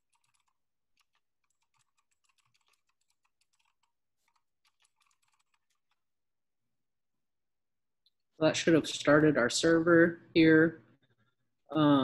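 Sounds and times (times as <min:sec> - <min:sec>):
computer keyboard typing: 0:00.0 - 0:06.1.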